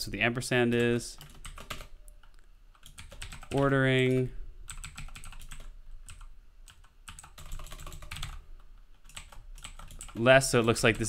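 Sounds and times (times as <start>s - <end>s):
computer keyboard typing: 0.6s - 11.0s.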